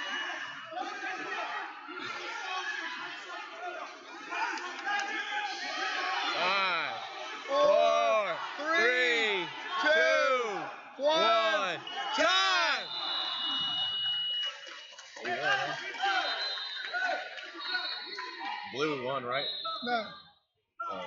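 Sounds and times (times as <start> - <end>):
coaches and spectators shouting: 0.0 - 14.6, 15.2 - 21.0.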